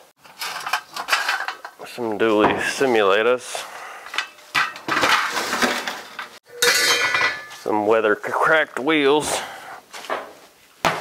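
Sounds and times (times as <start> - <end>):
metal wheel covers clanking: 4.1 - 7.7.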